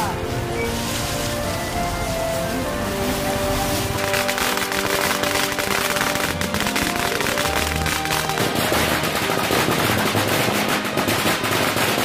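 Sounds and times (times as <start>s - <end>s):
background music: 0.0s - 12.0s
firecrackers cracking: 0.0s - 12.0s.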